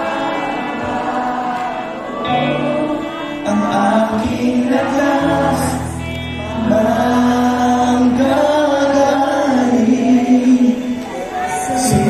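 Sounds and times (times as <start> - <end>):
band playing worship music: 0.0 - 12.0
singer and crowd singing: 0.0 - 12.0
bass guitar: 2.2 - 9.9.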